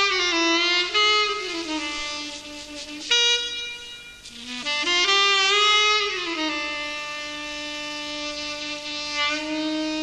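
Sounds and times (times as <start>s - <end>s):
faint breathy hiss: 0.0s - 10.0s
tenor saxophone playing: 0.0s - 10.0s.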